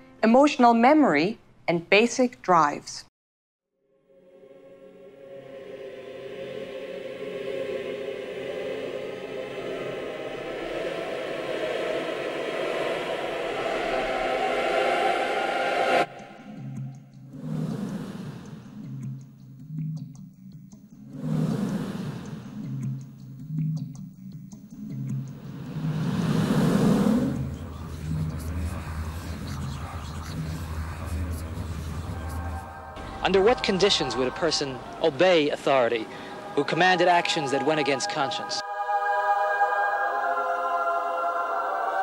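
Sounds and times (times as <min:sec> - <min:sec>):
rushing swell of noise: 0:03.9 - 0:18.9, 0:21.1 - 0:22.8, 0:25.3 - 0:37.2
dark ambient drone: 0:03.9 - 0:42.0.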